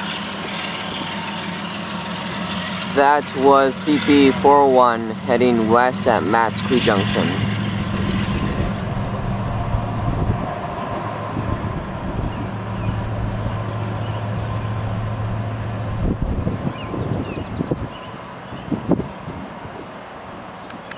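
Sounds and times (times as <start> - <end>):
locomotive engine low drone: 0.0 - 20.9
wind buffeting microphone: 0.0 - 20.9.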